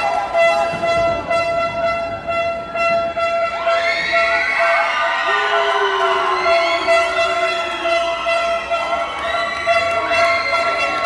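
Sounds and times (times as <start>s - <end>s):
steady horn-like tone: 0.0s - 11.0s
crowd shouting: 3.6s - 11.0s.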